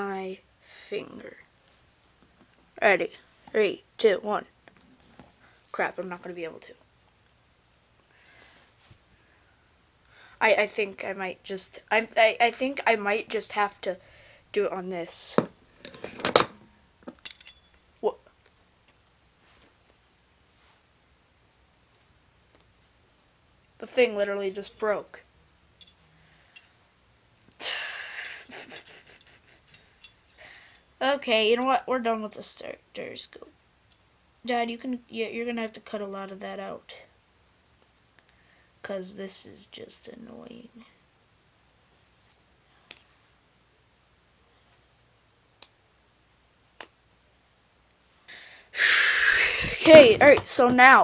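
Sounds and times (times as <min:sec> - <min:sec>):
high metallic ring: 0:17.2 - 0:17.8
small sharp clicks: 0:45.6 - 0:45.8.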